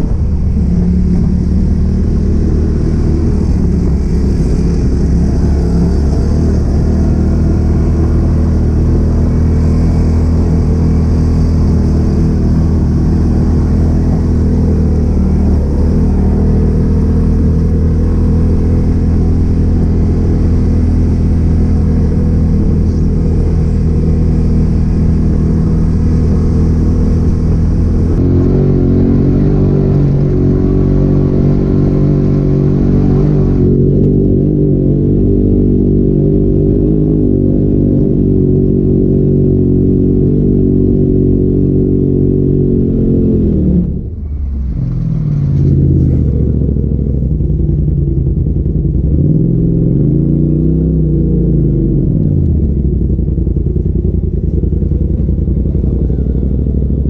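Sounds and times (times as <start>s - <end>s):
off-road vehicle engine running: 0.0s - 57.0s.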